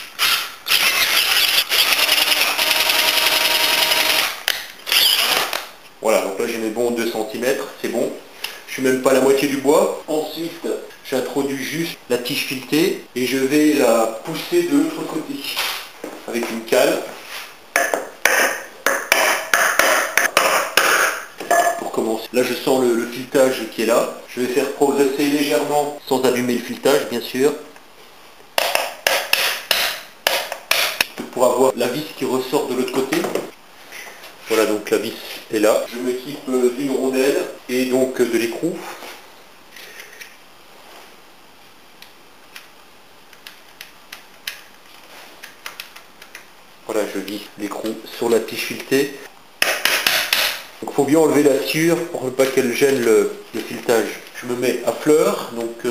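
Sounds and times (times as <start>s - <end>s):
low hiss: 3.7s - 19.5s, 21.1s - 55.9s.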